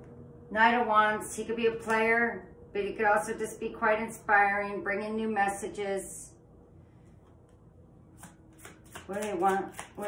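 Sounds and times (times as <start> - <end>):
cards being shuffled: 8.2 - 10.0.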